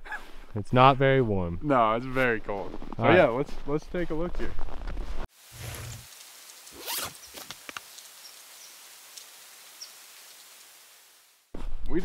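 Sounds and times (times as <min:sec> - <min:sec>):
faint hiss: 0:05.3 - 0:11.5.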